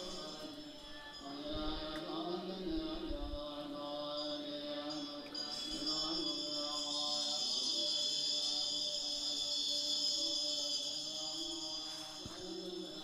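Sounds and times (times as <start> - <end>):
mantra chanting with music: 0.0 - 13.0.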